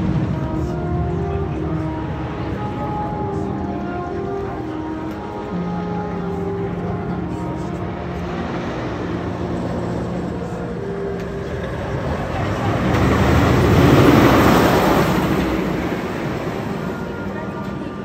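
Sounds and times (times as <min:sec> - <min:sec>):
roller coaster train rushing: 0:00.0 - 0:05.8, 0:07.2 - 0:18.0.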